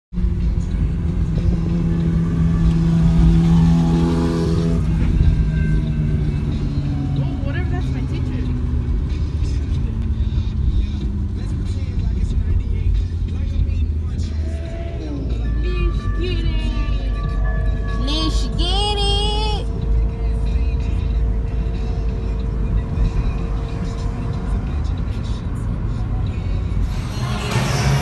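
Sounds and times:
car cabin road and engine rumble: 0.2 - 28.0
voices: 11.5 - 26.4.

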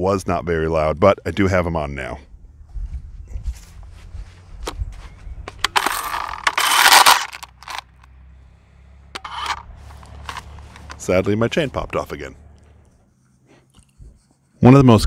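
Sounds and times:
battery chainsaw cutting brush: 5.6 - 7.8, 9.2 - 11.9.

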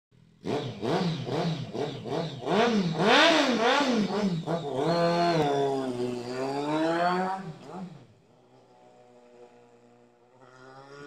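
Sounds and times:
motorcycle engine revving: 0.2 - 11.0.

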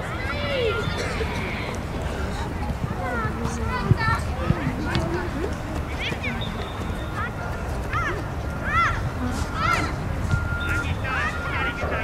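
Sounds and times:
children shouting: 0.0 - 5.0, 6.0 - 10.1.

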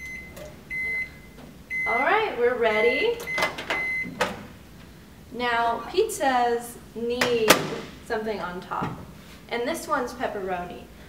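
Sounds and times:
microwave high beep: 0.0 - 4.2.

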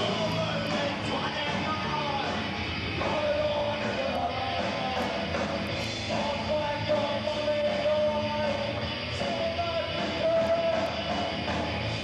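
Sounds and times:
guitar: 0.0 - 12.0
rock band playing live: 0.0 - 12.0.

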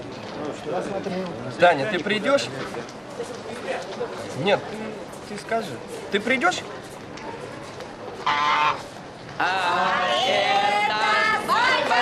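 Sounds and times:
goose honking: 8.2 - 8.8.

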